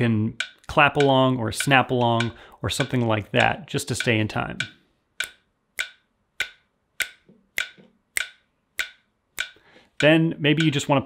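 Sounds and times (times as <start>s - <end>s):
metronome clicks: 0.0s - 11.0s.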